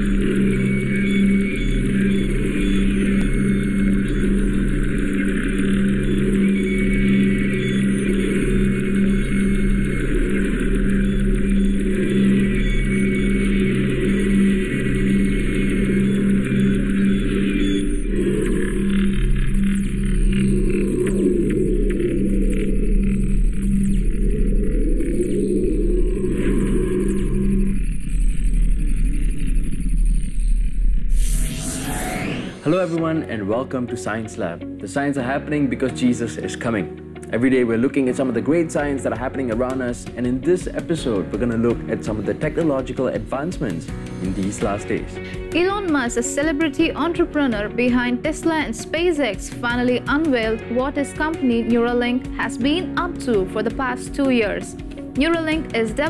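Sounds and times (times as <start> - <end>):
pulsing synthesized drone: 0.0 - 56.0.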